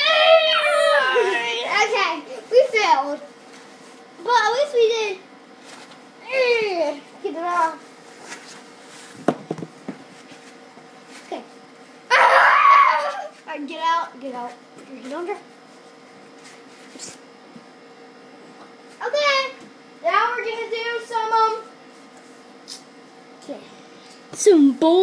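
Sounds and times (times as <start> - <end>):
young children crying and squealing: 0.0 - 1.8, 12.1 - 13.4
child shouting loudly: 0.0 - 2.7, 12.1 - 13.4.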